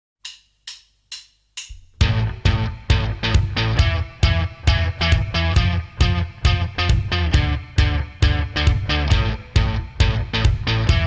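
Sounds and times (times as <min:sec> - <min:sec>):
percussion count-in clicks: 0:00.2 - 0:02.0
rock band playing: 0:02.0 - 0:11.0.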